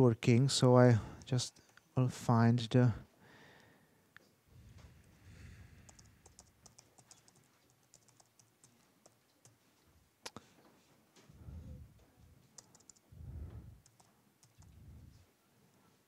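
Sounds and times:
keyboard typing and mouse clicks: 5.8s - 9.6s, 12.4s - 14.8s.

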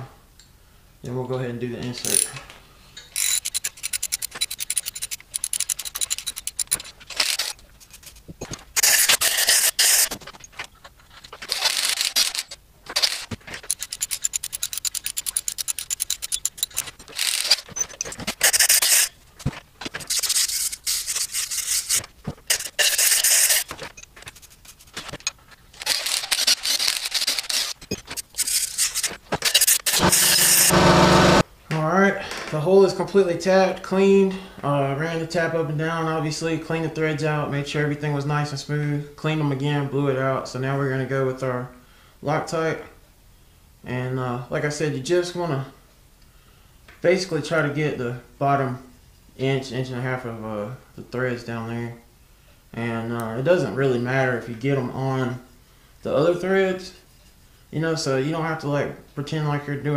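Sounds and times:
short hissing bursts: 18.4s - 19.1s, 20.1s - 23.6s.

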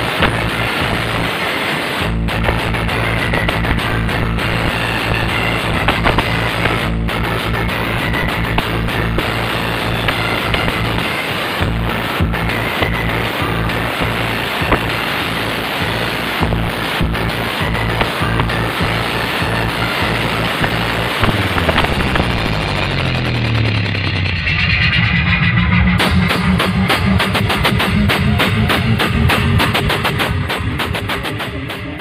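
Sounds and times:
loud music with pulsing bass: 0.0s - 32.0s
bass sweep falling in pitch: 2.0s - 30.8s.

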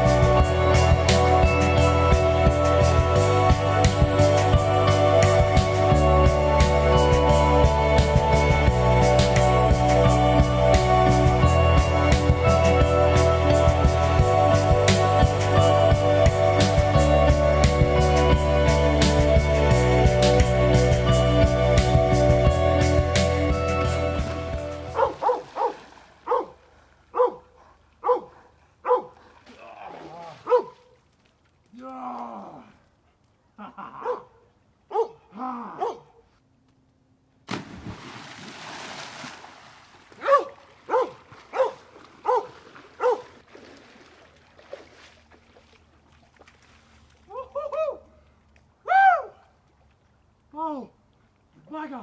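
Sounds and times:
water splashing: 23.2s - 32.6s, 37.5s - 48.8s
dog whining yelps: 25.0s - 25.7s
dog barking: 25.0s - 29.2s, 30.4s - 30.8s, 34.0s - 35.2s, 35.8s - 36.2s, 40.2s - 43.3s.

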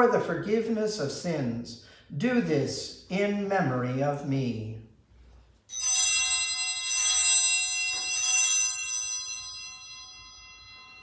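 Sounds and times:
altar bells ringing: 5.7s - 11.0s.

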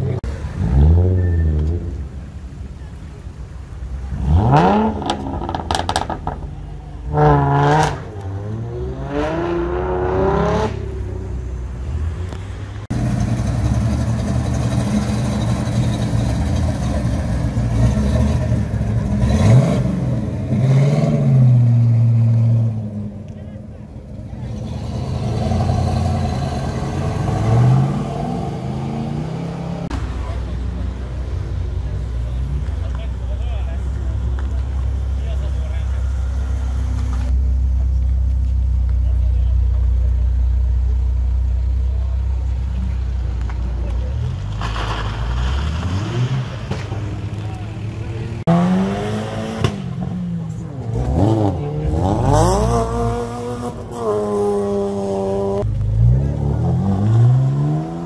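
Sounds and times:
car engines revving: 0.0s - 58.0s
steady engine rumble: 0.0s - 58.0s.

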